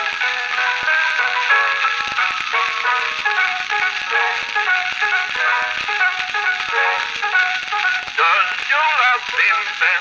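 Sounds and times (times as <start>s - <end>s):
record surface crackle: 0.0s - 10.0s.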